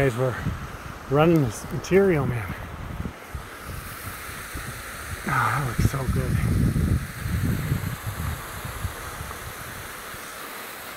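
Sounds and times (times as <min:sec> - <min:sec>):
wind buffeting microphone: 0:00.0 - 0:10.3
stream running over rocks: 0:00.0 - 0:10.9.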